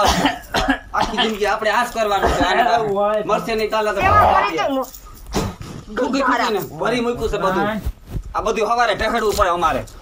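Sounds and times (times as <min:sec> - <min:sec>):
cough: 0:00.0 - 0:01.4, 0:02.2 - 0:02.7
women speaking: 0:04.0 - 0:04.9, 0:05.9 - 0:06.7.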